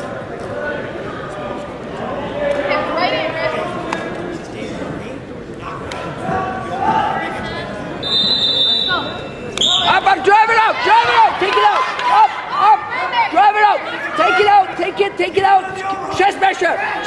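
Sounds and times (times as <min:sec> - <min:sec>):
referee's whistle: 0:08.0 - 0:10.1.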